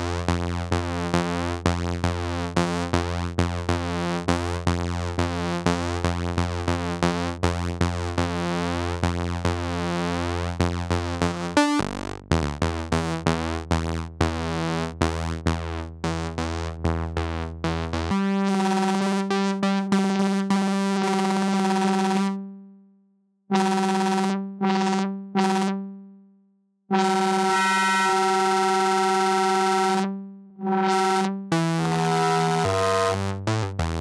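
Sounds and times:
bright buzzy synthesizer notes: 16.0 - 22.3, 26.9 - 34.0.

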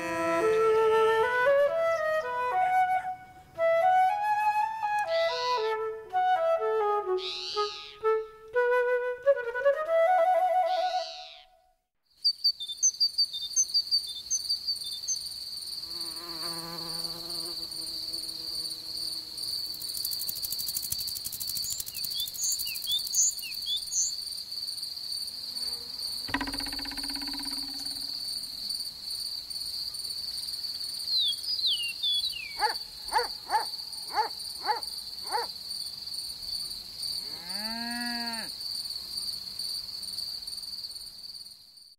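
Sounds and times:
high bird chirps: 7.2 - 8.0, 12.2 - 15.2, 21.6 - 24.2, 26.3 - 28.2, 31.1 - 32.7
low-pitched animal calls: 7.2 - 8.0
crickets chirring: 12.2 - 41.9.

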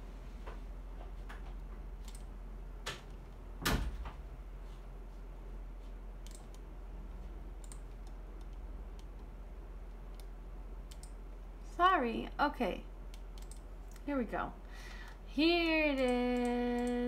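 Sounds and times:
low hum: 0.0 - 17.0.

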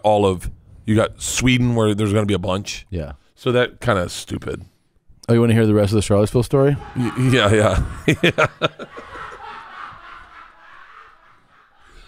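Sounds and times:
man laughing softly: 6.8 - 12.0.

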